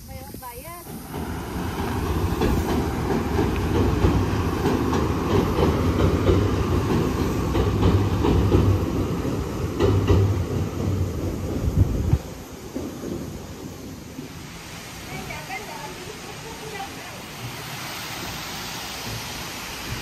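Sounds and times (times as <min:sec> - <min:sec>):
train rumbling over steel bridge: 0:00.0 - 0:20.0
clacks from rails: 0:00.9 - 0:14.4.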